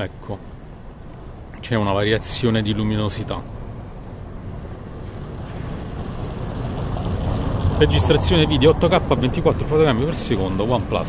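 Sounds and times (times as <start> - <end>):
wind rumbling on microphone: 3.5 - 11.0.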